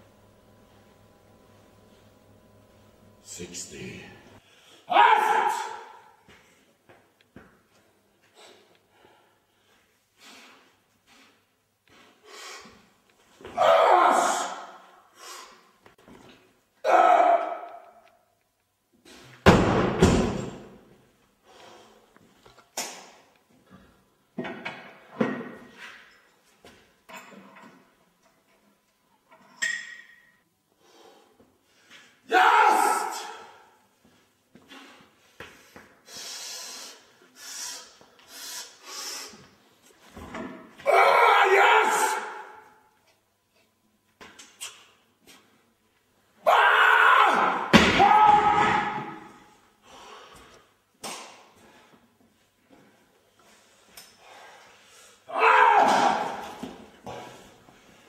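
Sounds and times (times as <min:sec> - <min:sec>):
man shouting and grunting: 0:04.9 - 0:06.1, 0:13.4 - 0:15.0, 0:16.8 - 0:17.9, 0:32.2 - 0:33.7, 0:40.8 - 0:42.6, 0:46.4 - 0:49.4, 0:55.3 - 0:57.2.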